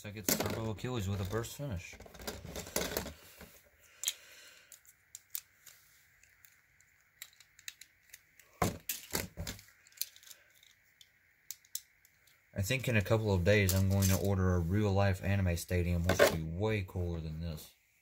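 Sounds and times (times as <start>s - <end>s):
plastic parts clicking and clattering: 0.2s - 12.4s.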